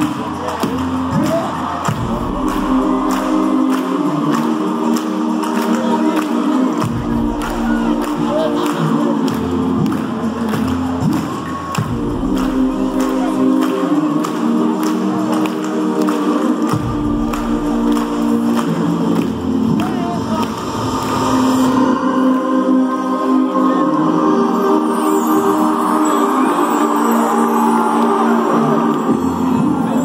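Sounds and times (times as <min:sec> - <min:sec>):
person singing: 0:00.0 - 0:30.0.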